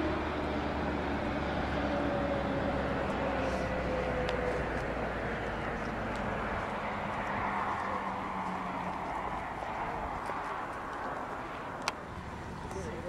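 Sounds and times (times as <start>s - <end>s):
outdoor rushing noise: 0.0s - 13.0s
vehicle engine hum: 0.0s - 13.0s.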